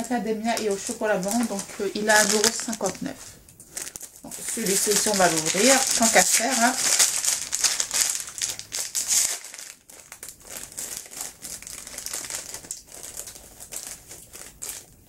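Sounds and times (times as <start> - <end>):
packaging crinkling: 0.5 - 15.0.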